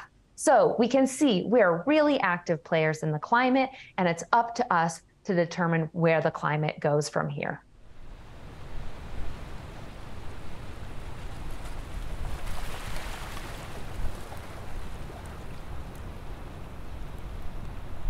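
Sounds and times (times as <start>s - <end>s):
wind buffeting microphone: 7.9s - 18.0s
water washing: 9.0s - 18.0s.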